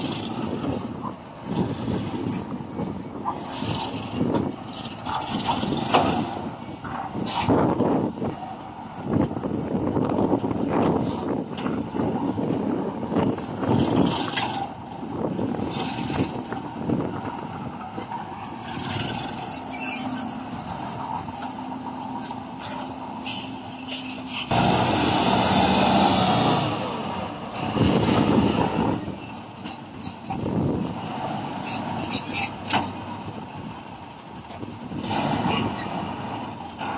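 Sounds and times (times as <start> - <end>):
dump truck diesel engine: 0.0 - 36.9.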